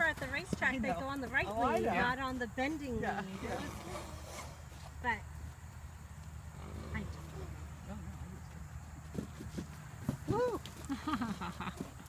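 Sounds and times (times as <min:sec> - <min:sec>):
horse cantering on sand: 0:00.0 - 0:12.0.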